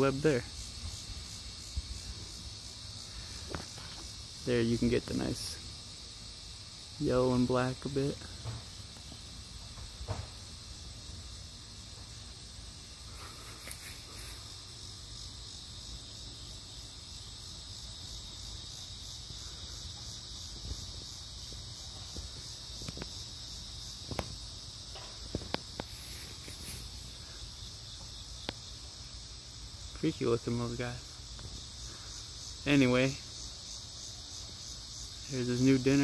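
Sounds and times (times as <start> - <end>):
insects singing: 0.0 - 36.0.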